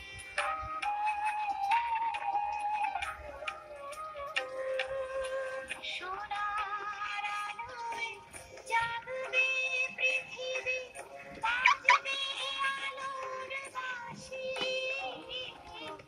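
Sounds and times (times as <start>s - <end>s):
high voice singing: 3.0s - 16.0s.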